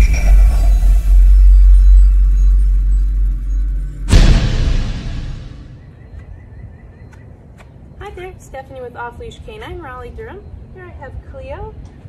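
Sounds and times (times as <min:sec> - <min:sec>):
deep bass rumble: 0:00.0 - 0:06.1.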